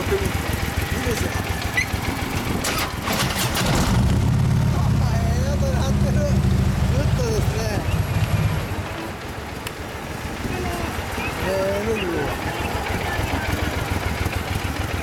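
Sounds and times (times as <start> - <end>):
motorcycle engine idling and revving: 0.0 - 15.0.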